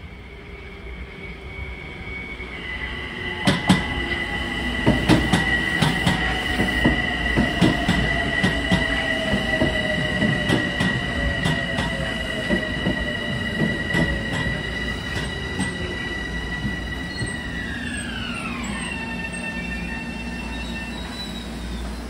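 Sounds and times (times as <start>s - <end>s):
high-pitched squeal: 0.0s - 22.0s
train motor whine: 1.4s - 22.0s.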